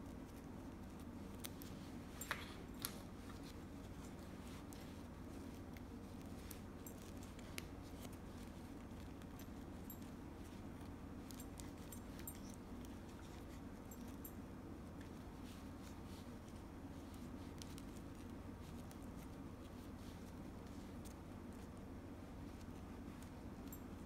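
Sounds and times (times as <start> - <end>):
low room hum: 0.0 - 24.0
ribbon rustling and clicking: 0.0 - 24.0.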